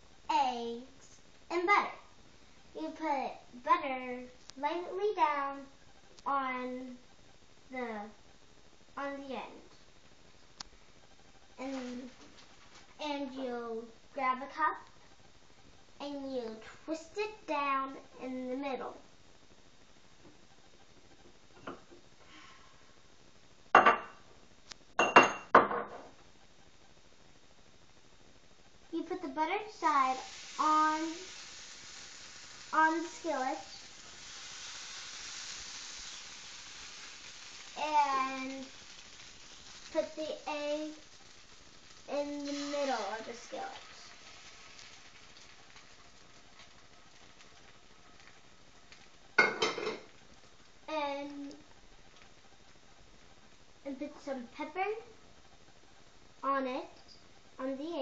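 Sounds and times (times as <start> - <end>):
egg and bread frying in skillet: 0.0 - 58.0
glass clinking on hard surface: 25.0 - 26.1.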